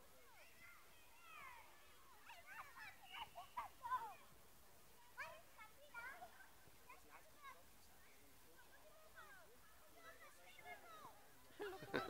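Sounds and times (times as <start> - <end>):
distant children shouting: 0.3 - 4.4.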